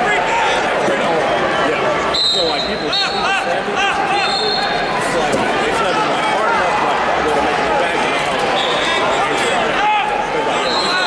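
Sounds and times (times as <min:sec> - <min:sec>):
arena crowd noise: 0:00.0 - 0:11.0
referee's whistle: 0:02.1 - 0:03.3, 0:04.2 - 0:04.9, 0:08.6 - 0:09.0, 0:10.6 - 0:11.0.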